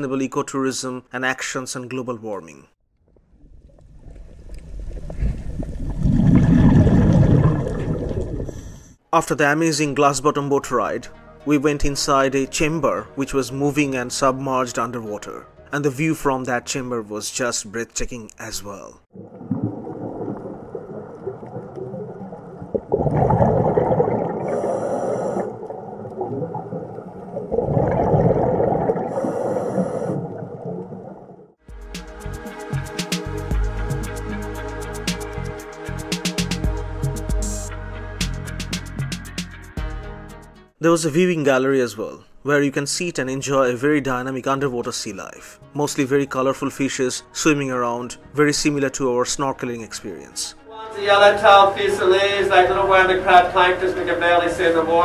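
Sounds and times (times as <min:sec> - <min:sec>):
water churning and bubbling: 0:03.0 - 0:09.0, 0:19.1 - 0:31.6.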